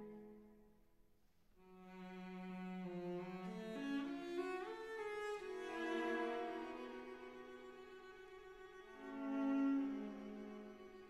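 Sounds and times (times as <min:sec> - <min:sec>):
slow bowed strings music: 0:00.0 - 0:00.6, 0:01.6 - 0:11.0.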